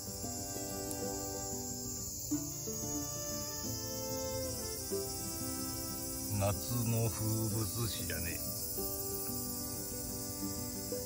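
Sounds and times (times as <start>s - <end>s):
background music of held notes: 0.0s - 11.0s
cicadas droning: 0.0s - 11.0s.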